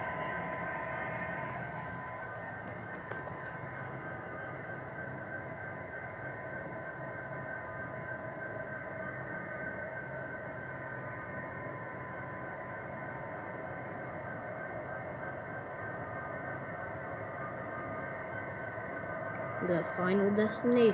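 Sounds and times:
diesel engine drone through small speaker: 0:00.0 - 0:20.9.

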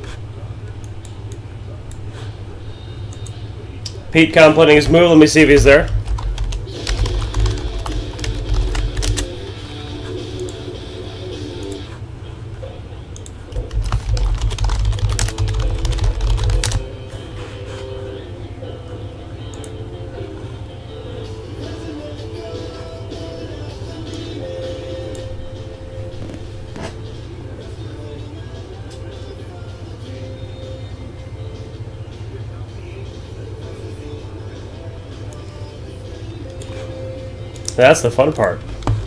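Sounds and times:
soft background music: 0:00.0 - 0:39.0
keyboard typing and clicking: 0:05.8 - 0:09.3, 0:13.2 - 0:16.8.

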